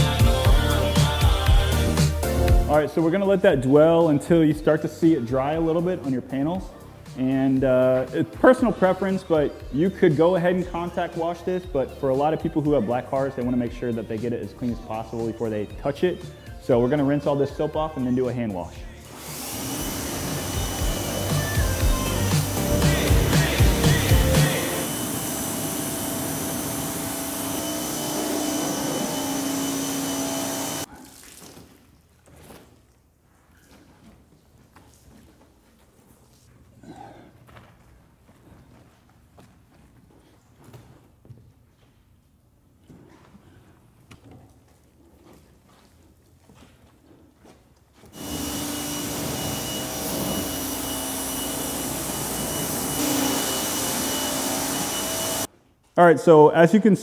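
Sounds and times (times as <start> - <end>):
pressure washer spraying water: 19.2 - 30.9, 48.2 - 55.5.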